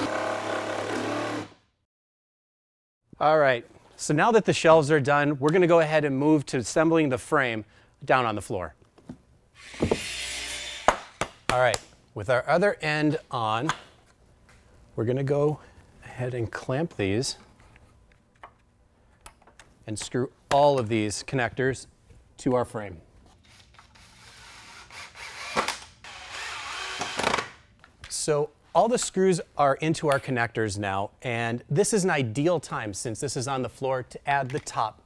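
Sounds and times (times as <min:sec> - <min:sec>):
cordless drill driving screws: 0:09.6 - 0:11.2, 0:23.5 - 0:27.5.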